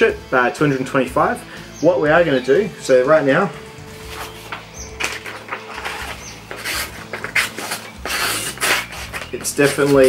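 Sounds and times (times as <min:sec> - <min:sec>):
paper rustling: 0:04.0 - 0:10.0
knife tearing paper: 0:04.1 - 0:10.0.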